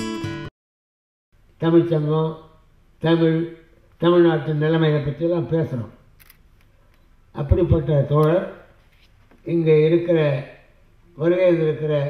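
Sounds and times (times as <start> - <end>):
person speaking: 7.3 - 8.8.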